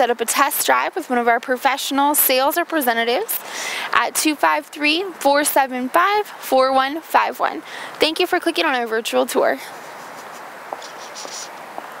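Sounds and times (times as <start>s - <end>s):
steady background hiss: 0.0s - 12.0s
footsteps on pavement: 9.6s - 12.0s.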